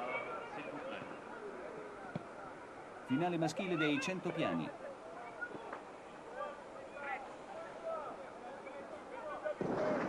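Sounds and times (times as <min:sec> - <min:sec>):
faint murmur of voices: 0:00.0 - 0:10.0.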